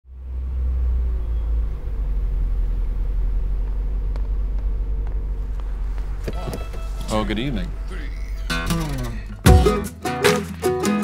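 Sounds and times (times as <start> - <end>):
car engine idling: 0.1 - 9.7.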